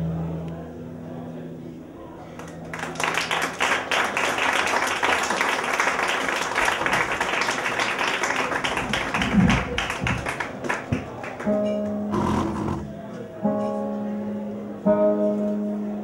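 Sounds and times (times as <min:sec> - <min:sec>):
audience applauding: 0:02.3 - 0:12.6.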